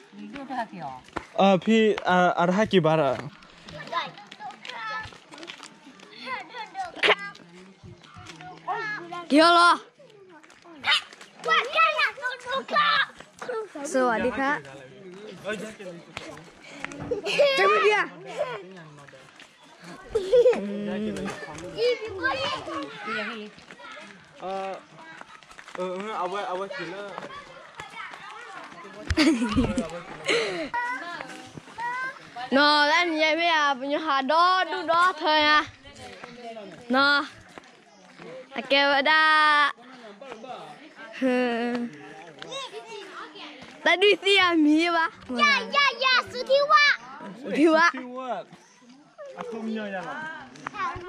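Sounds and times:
children calling and chattering: 0.0s - 51.0s.

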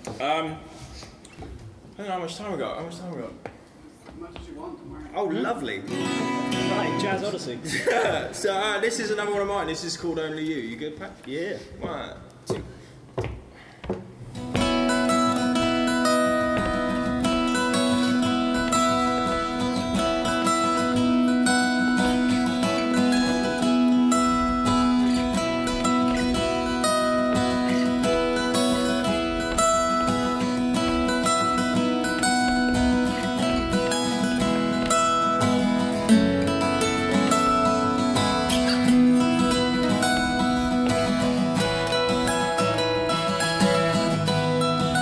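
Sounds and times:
fingerpicked acoustic guitars: 4.5s - 10.0s, 12.6s - 45.0s.

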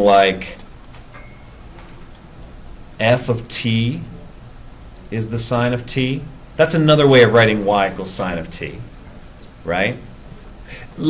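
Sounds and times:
thin high tone: 1.1s - 1.8s.

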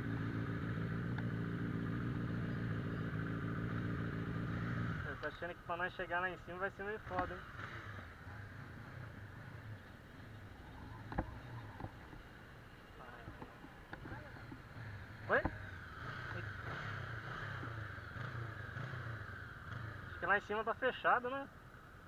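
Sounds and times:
motorcycle engine at low revs: 0.0s - 22.0s.

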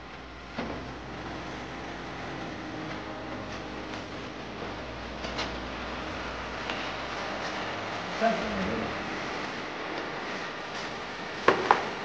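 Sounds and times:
fan running: 0.0s - 12.0s.

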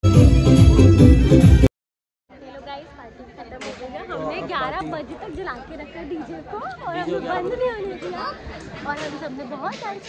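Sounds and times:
chatter of voices: 2.3s - 10.0s
woman talking: 2.3s - 10.0s.

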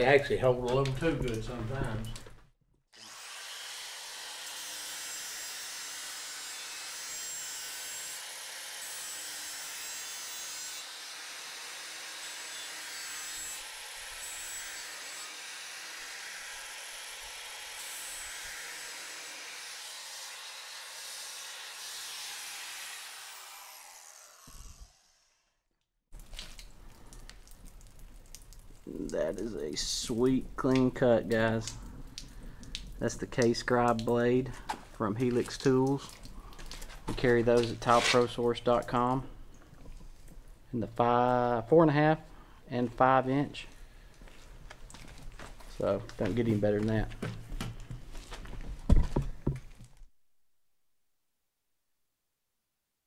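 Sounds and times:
background noise: 0.0s - 3.6s, 26.1s - 53.0s.

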